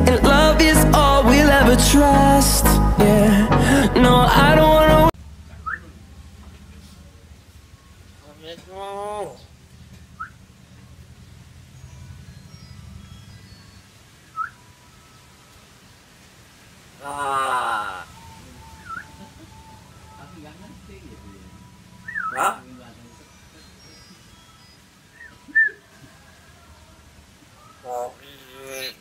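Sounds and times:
myna whistling upward note: 5.6s - 5.9s, 14.3s - 14.6s, 18.1s - 21.3s, 22.0s - 22.4s.

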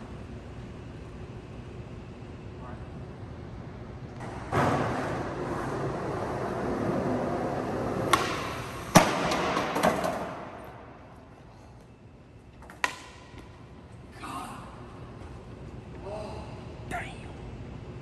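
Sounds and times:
skateboard wheels rolling on stone: 4.5s - 10.4s
skateboard clattering: 4.5s - 10.6s
skateboard pop: 8.0s - 10.4s
skateboard landing slam: 8.0s - 10.6s.

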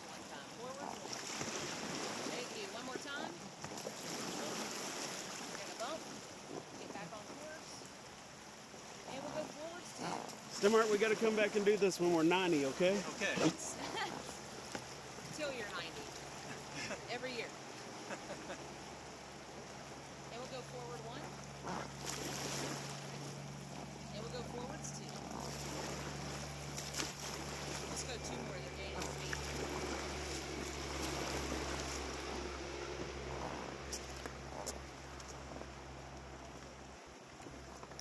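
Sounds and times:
calm river flowing: 0.0s - 38.0s.

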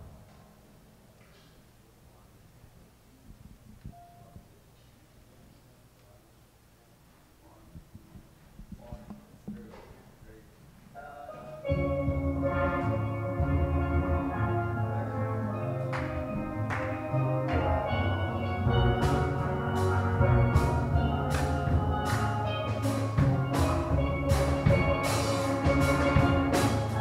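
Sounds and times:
steel pan band playing: 11.0s - 27.0s.

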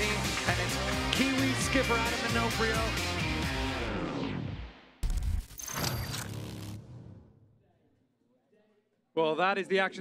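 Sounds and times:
backing music: 0.0s - 4.4s.

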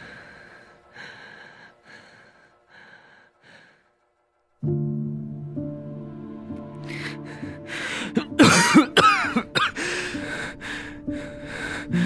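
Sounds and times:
soft piano background music: 4.6s - 12.0s
man coughing and gasping: 8.0s - 9.8s.

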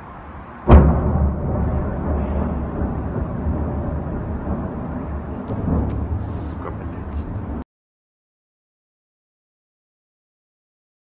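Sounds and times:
steady low rumble: 0.0s - 7.6s
faint voices: 5.6s - 7.6s.

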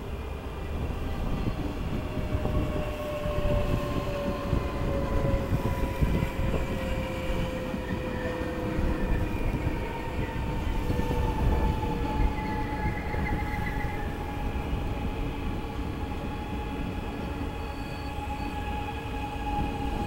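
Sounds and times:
train wheels rumbling on rail: 0.0s - 20.0s
train braking whine: 2.4s - 20.0s.

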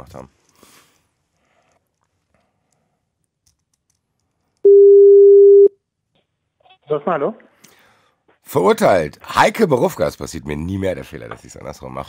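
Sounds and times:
telephone ringback beep: 4.7s - 5.7s.

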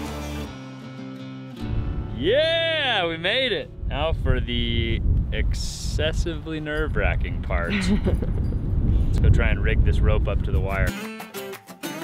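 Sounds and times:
acoustic guitar music: 0.0s - 4.2s, 10.7s - 12.0s
man shouting triumphantly: 2.2s - 3.2s.

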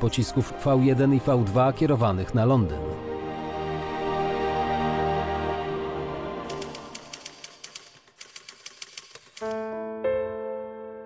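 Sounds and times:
typewriter keys clacking: 6.5s - 9.7s.

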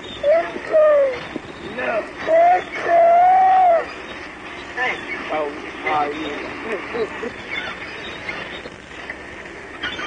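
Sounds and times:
steady background hiss: 0.0s - 10.0s
people crying out: 2.2s - 4.0s.

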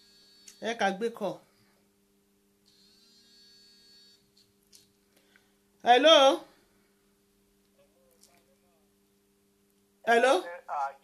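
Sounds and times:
faint high buzz: 0.0s - 5.9s
faint mains hum: 0.0s - 11.0s.

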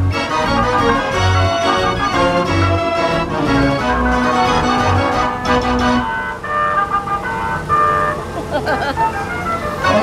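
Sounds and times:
organ reedy held chords: 0.0s - 10.0s.

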